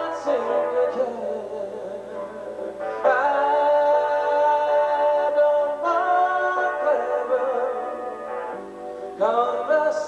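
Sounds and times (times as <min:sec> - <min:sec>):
held melody line: 0:00.0 - 0:10.0
sustained keyboard chords: 0:00.0 - 0:10.0.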